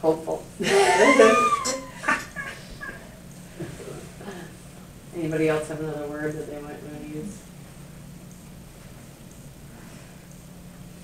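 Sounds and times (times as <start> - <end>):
person laughing: 0.6 - 3.1.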